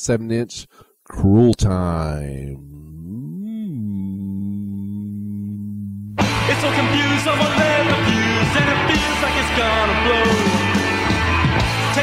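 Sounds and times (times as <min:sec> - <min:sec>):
sustained low note: 0:01.8 - 0:06.4.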